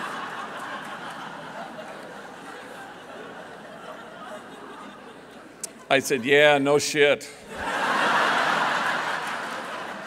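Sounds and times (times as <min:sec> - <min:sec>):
audience laughing: 0:00.0 - 0:05.6, 0:07.5 - 0:10.0.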